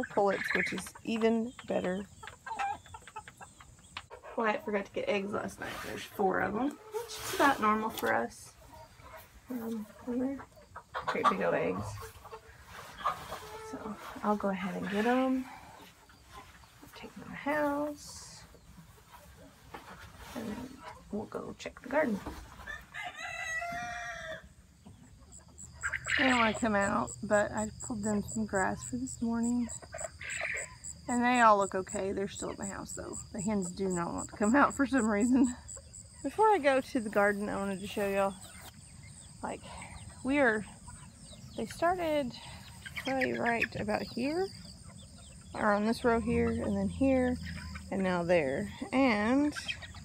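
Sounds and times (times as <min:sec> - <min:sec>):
hens clucking: 0:00.0 - 0:50.0
rooster crowing: 0:22.8 - 0:24.5.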